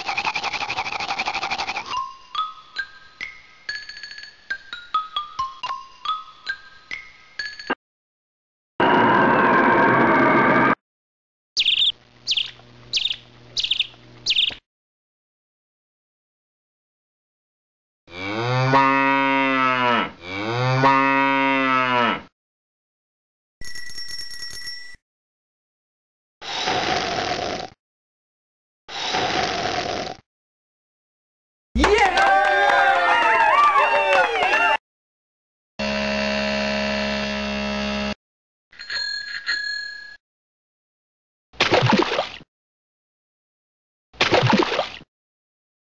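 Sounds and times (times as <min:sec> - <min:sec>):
cow mooing: 0:18.1 - 0:22.3
bell ringing: 0:23.6 - 0:25.0, 0:38.8 - 0:40.2.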